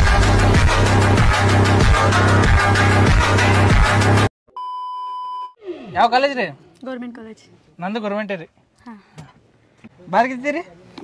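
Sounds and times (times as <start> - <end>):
loud electronic music: 0.0 - 4.3.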